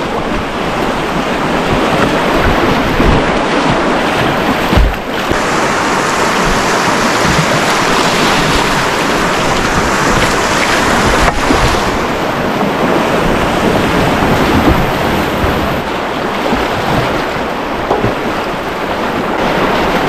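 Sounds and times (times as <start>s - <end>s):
whitewater roaring: 0.0s - 20.0s
low rumbling on microphone: 6.2s - 20.0s.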